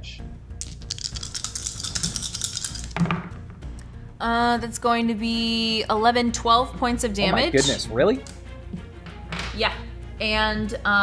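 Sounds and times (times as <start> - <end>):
dice clicking and clattering: 0.6 - 3.3.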